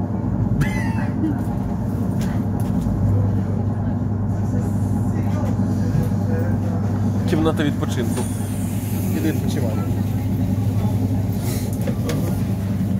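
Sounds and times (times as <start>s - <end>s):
train hum and rumble: 0.0s - 12.9s.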